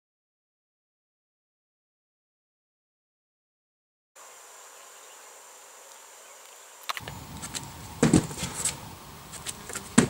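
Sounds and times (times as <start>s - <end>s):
hands and shoes slapping rock: 7.0s - 10.0s
heavy thump of landing: 7.5s - 8.8s, 9.7s - 10.0s.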